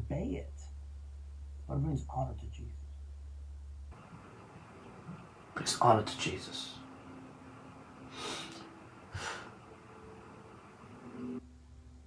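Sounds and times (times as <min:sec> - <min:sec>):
faint hiss: 0:00.0 - 0:12.0
low steady hum: 0:00.0 - 0:12.0.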